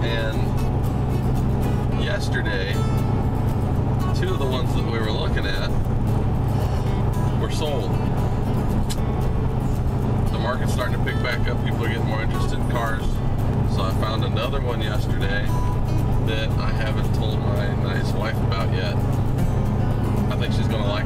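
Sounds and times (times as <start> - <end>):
road and engine drone: 0.0 - 21.0.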